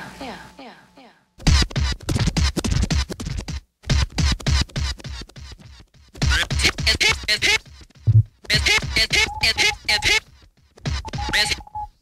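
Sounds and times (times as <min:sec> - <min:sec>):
record scratching on turntable: 0:01.5 - 0:03.6, 0:06.2 - 0:10.2, 0:10.9 - 0:11.6
drum beat: 0:07.9 - 0:10.2, 0:11.0 - 0:11.5.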